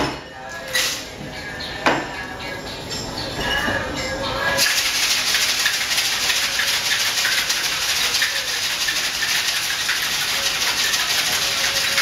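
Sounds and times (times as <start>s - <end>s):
glass clinks: 1.2s - 4.6s.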